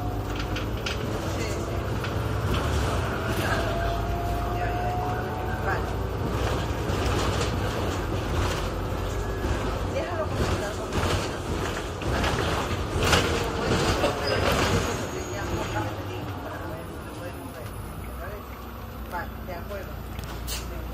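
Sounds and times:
bus body rattling and knocking: 0.0s - 4.0s, 5.2s - 18.4s
bus engine hum: 0.0s - 20.9s.

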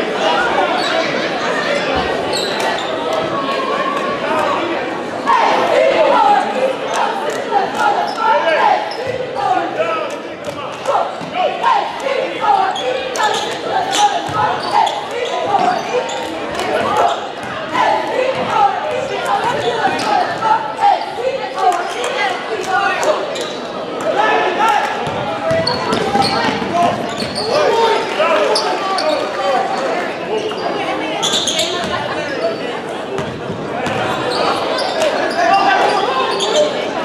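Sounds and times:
crowd chatter: 0.0s - 37.0s
sneaker squeaks: 0.6s - 3.4s, 8.0s - 9.6s, 12.6s - 17.6s, 18.3s - 21.1s, 23.3s - 23.8s, 25.0s - 27.9s, 28.5s - 29.4s, 30.3s - 36.9s.

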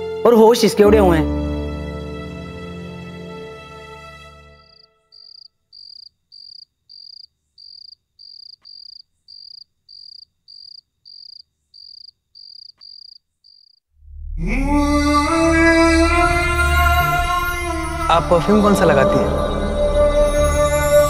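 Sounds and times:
music: 0.0s - 5.0s, 14.1s - 21.0s
cricket chirping: 4.8s - 13.8s.

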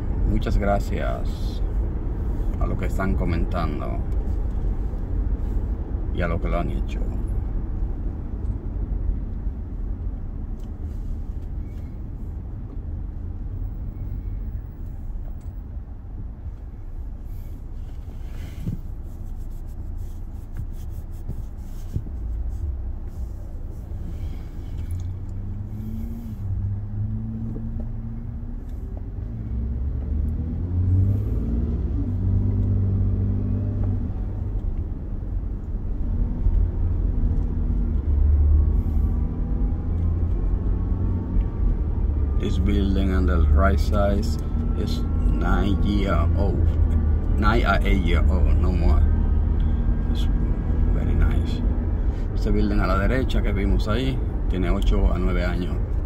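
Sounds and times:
car engine: 0.0s - 56.0s
road rumble inside car: 0.0s - 56.0s.

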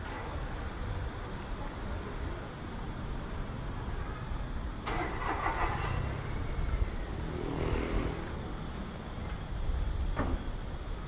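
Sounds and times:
traffic engines rumbling: 0.0s - 11.0s
loud engine passing: 4.9s - 8.6s.

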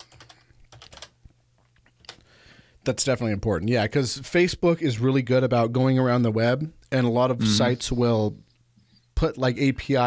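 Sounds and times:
keyboard typing: 0.0s - 1.2s
low electrical hum: 0.0s - 10.0s.

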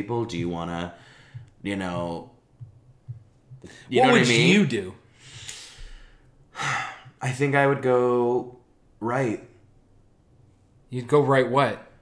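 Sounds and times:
man breathing in: 1.0s - 1.5s, 5.1s - 7.1s
man sighing: 6.5s - 7.2s.

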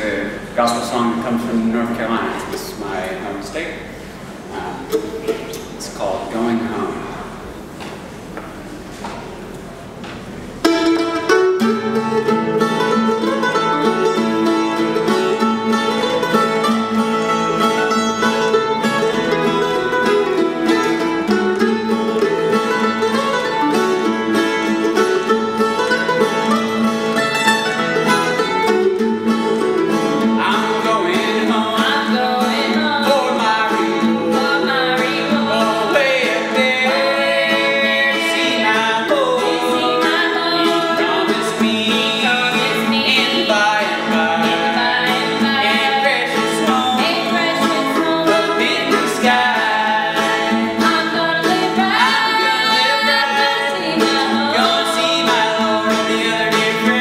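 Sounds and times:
acoustic guitar: 0.0s - 57.0s
mandolin: 4.0s - 6.6s, 8.8s - 57.0s
man and woman singing: 30.2s - 57.0s.

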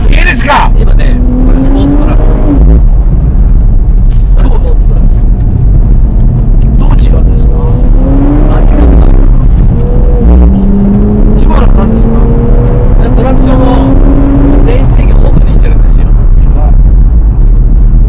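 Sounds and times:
car engine accelerating: 0.0s - 18.0s
heavy low rumble: 0.0s - 18.0s.

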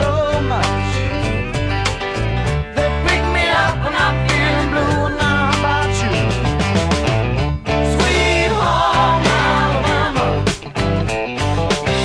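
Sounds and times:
acoustic guitar: 0.0s - 12.0s
drums keeping a steady beat: 0.0s - 12.0s
electric bass: 0.0s - 12.0s.

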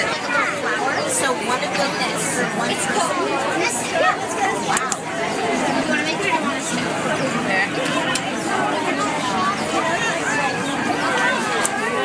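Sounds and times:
babble of overlapping voices: 0.0s - 12.0s.

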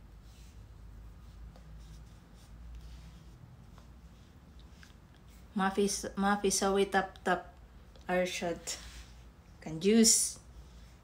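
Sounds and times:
rustling and light scratching: 0.0s - 6.1s, 7.8s - 11.0s
low steady rumble: 0.0s - 11.0s.

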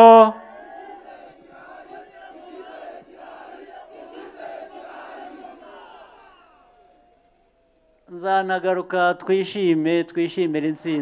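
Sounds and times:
crowd calling out together: 0.0s - 7.5s.

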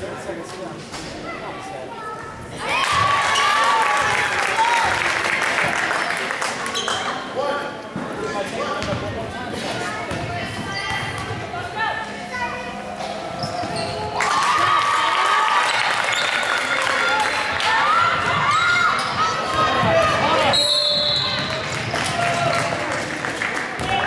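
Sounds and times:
crowd voices and shouts: 0.0s - 24.0s
basketball bouncing on gym floor: 8.8s - 9.1s.

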